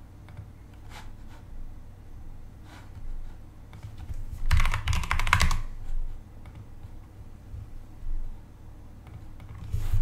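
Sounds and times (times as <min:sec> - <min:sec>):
keyboard typing: 0:03.7 - 0:05.7.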